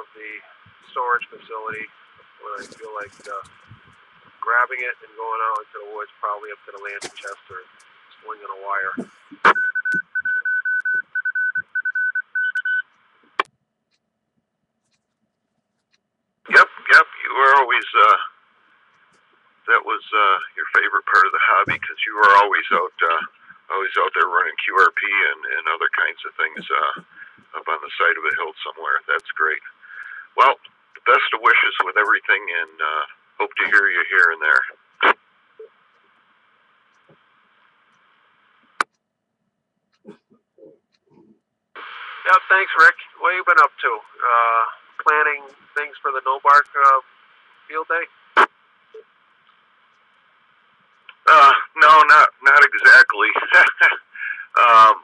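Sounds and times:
faint radio carrier hiss: 0.0 - 9.6, 16.5 - 38.9, 40.1 - 55.0
morse code beeps: 9.4 - 12.8.

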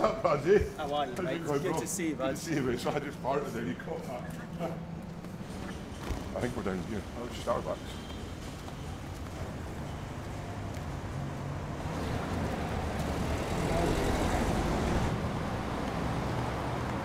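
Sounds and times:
rumble of cars on road: 0.0 - 17.0.

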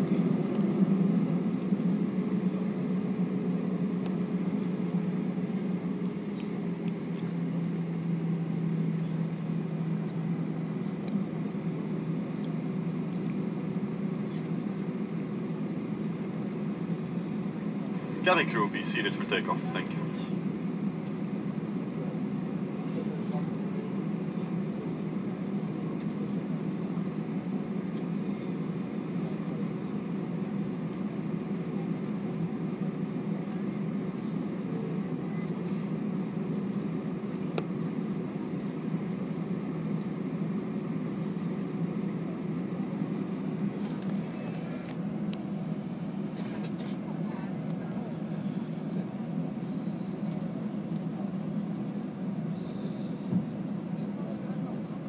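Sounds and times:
airliner engine drone in cabin: 0.0 - 55.0.

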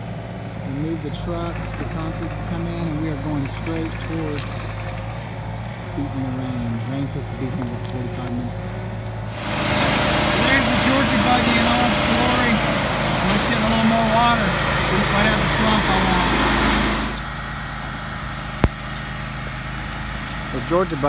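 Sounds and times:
construction machinery engines: 0.0 - 21.0
loud rushing noise: 9.2 - 17.2.

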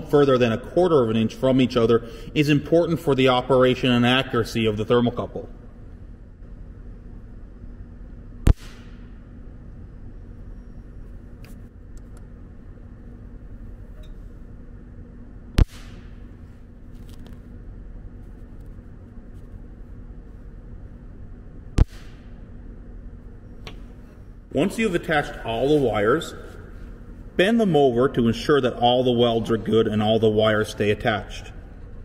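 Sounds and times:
steady low hum: 0.0 - 32.0
sharp electric welding cracks: 8.4 - 9.3, 15.6 - 17.3, 21.8 - 22.4.

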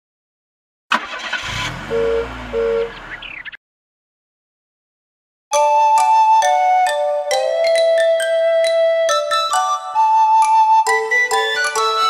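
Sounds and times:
two-tone car horn honk: 1.3 - 3.0
low running engine: 1.4 - 3.5.

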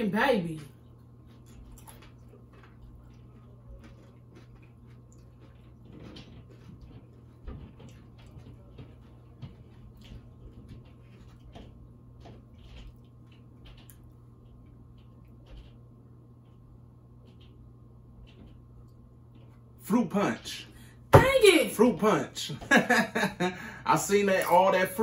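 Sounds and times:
chewing crunchy chips: 0.7 - 15.8.

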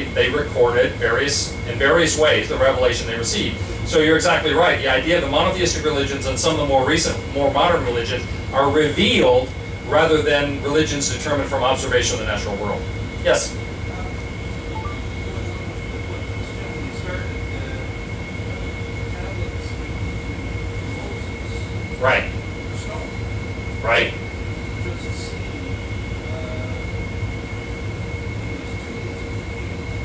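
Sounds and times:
low machinery rumble: 0.0 - 30.0
thin high hum: 0.0 - 30.0.

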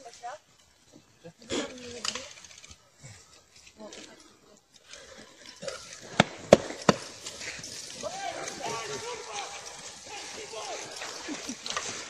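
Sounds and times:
faint voices outdoors: 0.0 - 6.1, 7.8 - 11.8.

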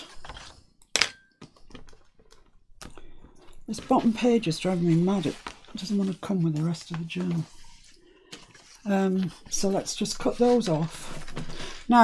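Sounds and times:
paper and tools handling: 0.0 - 0.7, 1.5 - 11.9.

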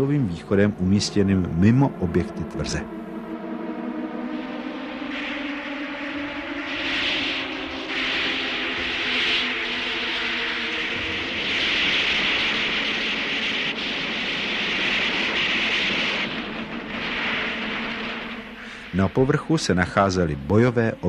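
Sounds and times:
engine drone: 0.0 - 20.3
loud even hiss: 4.4 - 21.0.

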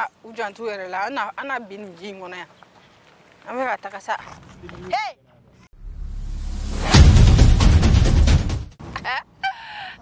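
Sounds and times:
music sting: 5.8 - 8.7
whoosh: 5.8 - 8.7.

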